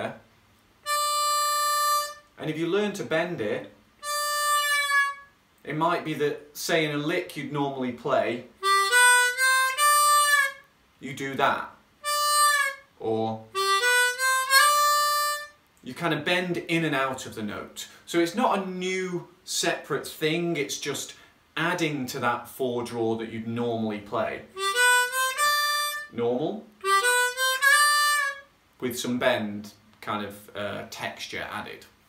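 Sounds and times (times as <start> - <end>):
harmonica note held: 0.8 - 2.3, 4.0 - 5.3, 12.0 - 12.9, 13.6 - 15.6, 24.6 - 26.1, 26.8 - 28.4.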